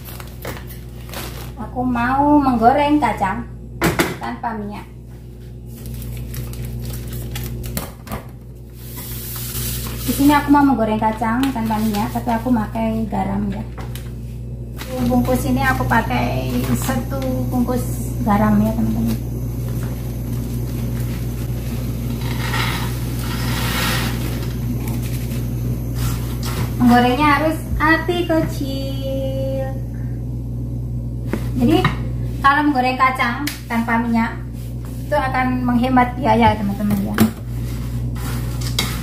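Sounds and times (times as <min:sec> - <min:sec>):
plastic bag crinkling: 0:00.0 - 0:01.6, 0:05.6 - 0:07.8
steady low hum: 0:00.0 - 0:39.0.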